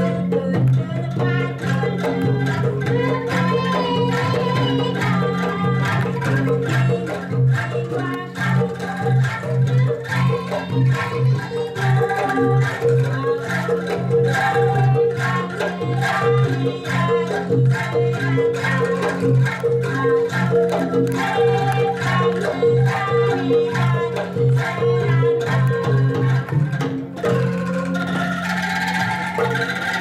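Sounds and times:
hand drum beat: 0:00.0 - 0:30.0
bamboo tubes rattling chords: 0:27.3 - 0:30.0.

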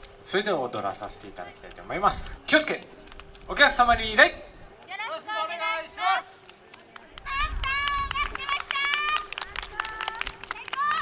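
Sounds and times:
audience clapping: 0:06.4 - 0:11.0.

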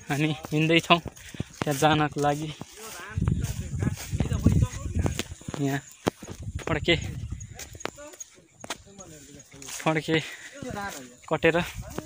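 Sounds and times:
man's voice: 0:00.0 - 0:05.9, 0:06.6 - 0:12.0.

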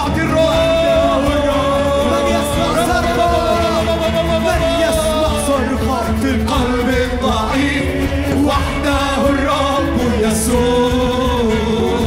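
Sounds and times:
drum kit: 0:00.0 - 0:12.0
guitars: 0:00.0 - 0:12.0
keyboard: 0:00.0 - 0:12.0
voices singing: 0:00.0 - 0:12.0.

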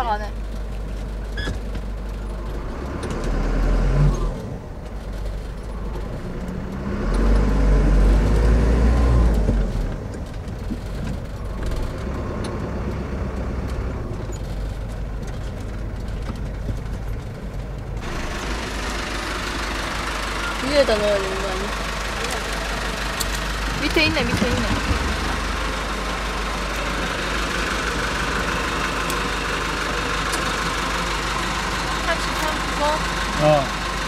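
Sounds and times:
bus engine and road rumble: 0:00.0 - 0:34.0.

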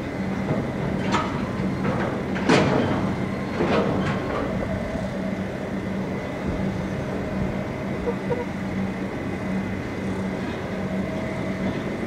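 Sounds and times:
diesel truck engine rumbling: 0:04.2 - 0:10.5.

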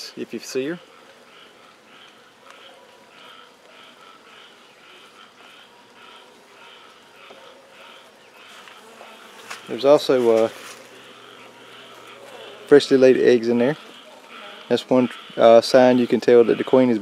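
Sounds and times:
honey bees humming: 0:00.0 - 0:17.0.

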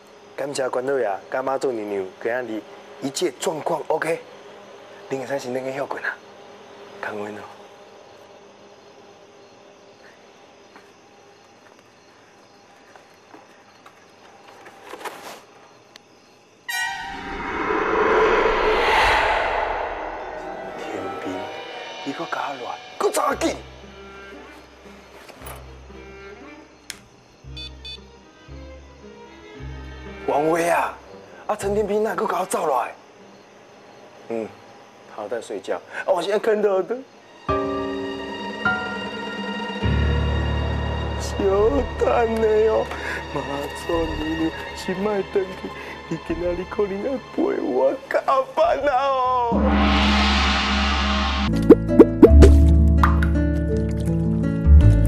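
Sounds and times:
low sustained string notes: 0:19.9 - 0:23.0
upward-sweeping bloops: 0:51.5 - 0:52.6.

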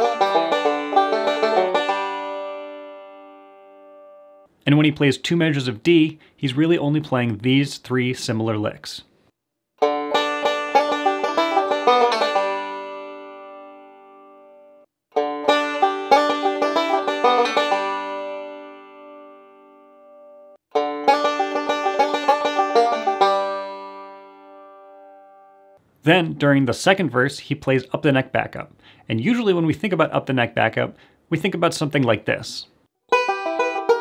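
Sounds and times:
banjo rolling licks: 0:00.0 - 0:03.3, 0:09.8 - 0:13.9, 0:15.2 - 0:19.3, 0:20.7 - 0:24.8, 0:33.1 - 0:34.0.

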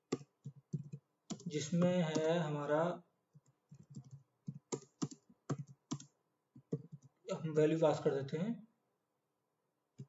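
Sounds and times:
computer keyboard typing: 0:00.0 - 0:02.4, 0:03.3 - 0:07.2.

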